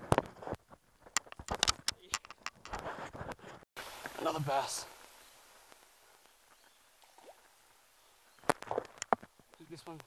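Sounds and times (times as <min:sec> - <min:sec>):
camera handling clicks and rattles: 0:01.1 - 0:02.8, 0:08.5 - 0:09.3.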